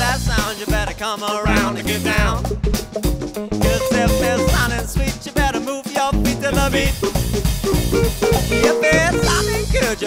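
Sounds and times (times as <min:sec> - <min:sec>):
funk rock band playing live: 0:00.0 - 0:10.0.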